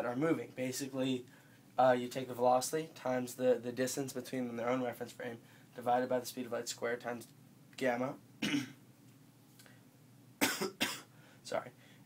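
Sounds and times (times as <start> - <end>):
man coughing: 8.4 - 8.8, 10.4 - 11.1.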